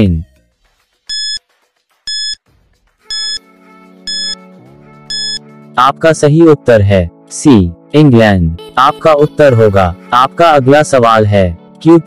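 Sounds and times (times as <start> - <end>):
short electronic beeps: 1.1 - 1.4, 2.1 - 2.4, 3.1 - 3.4, 4.1 - 4.4, 5.1 - 5.4.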